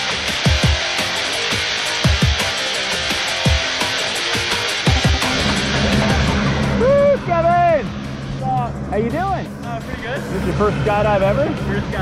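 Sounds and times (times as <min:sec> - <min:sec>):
low engine drone: 0:00.0 - 0:12.0.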